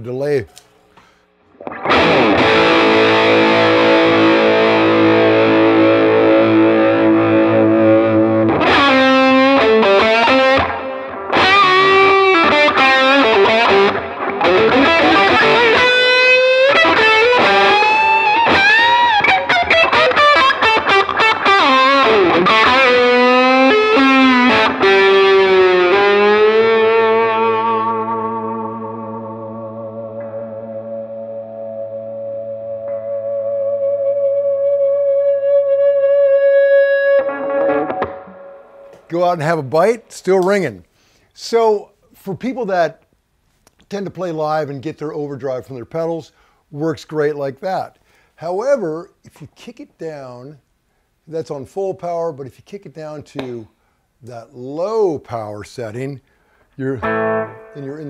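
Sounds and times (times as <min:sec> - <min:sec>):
overdriven electric guitar: 0:01.0 - 0:39.1, 0:56.4 - 0:58.0.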